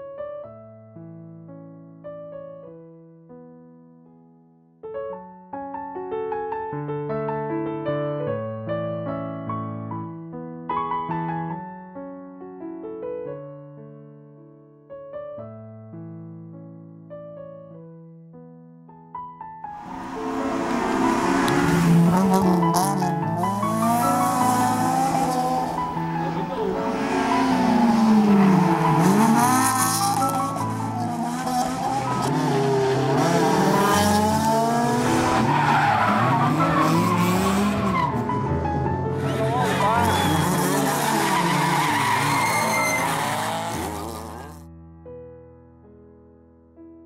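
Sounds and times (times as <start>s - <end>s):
background music: 19.6s - 44.3s
car engine revving: 19.8s - 44.6s
tyres squealing on tarmac: 23.4s - 38.2s, 39.2s - 44.6s.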